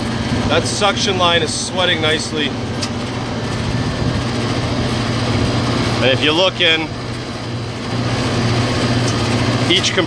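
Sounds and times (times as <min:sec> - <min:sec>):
hvac unit humming: 0:00.0 - 0:10.0.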